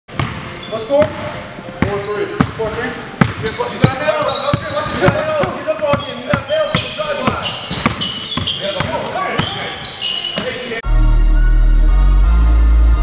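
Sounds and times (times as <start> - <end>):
basketball bouncing on hardwood: 0.1 - 0.4, 1.8 - 9.6
sneakers squeaking: 0.1 - 10.8
players' voices: 0.6 - 10.8.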